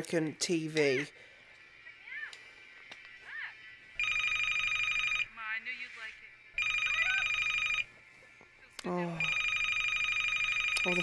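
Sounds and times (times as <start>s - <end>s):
telephone ringing: 4.0s - 5.4s, 6.5s - 7.9s, 9.2s - 11.0s.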